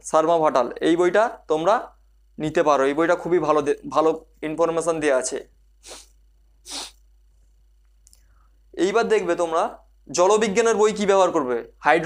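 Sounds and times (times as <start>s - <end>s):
man sniffing: 5.8s - 7.0s.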